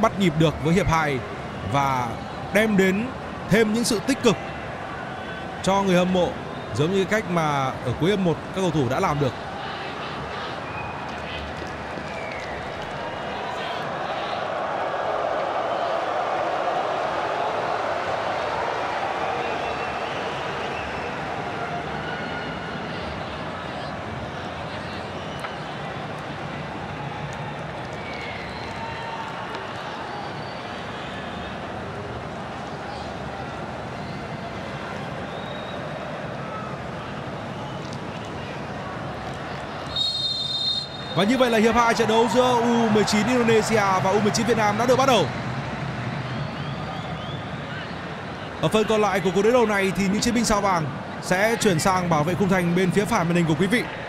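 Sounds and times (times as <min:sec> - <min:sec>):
stadium crowd noise: 0:00.0 - 0:54.0
referee whistle blast: 0:39.9 - 0:41.3.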